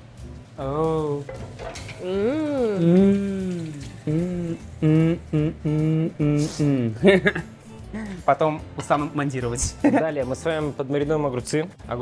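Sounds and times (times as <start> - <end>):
pan sizzling: 0.0 - 6.1
woman's appreciative mmm: 2.1 - 7.0
woman laughing: 4.8 - 8.1.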